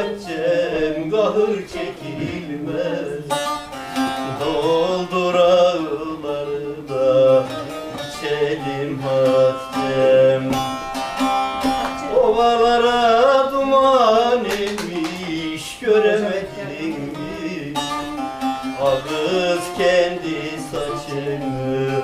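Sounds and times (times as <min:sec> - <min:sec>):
man singing ornamented notes: 0:00.0 - 0:11.0, 0:12.0 - 0:22.0
plucked long-necked lute melody: 0:00.0 - 0:14.4, 0:15.2 - 0:22.0.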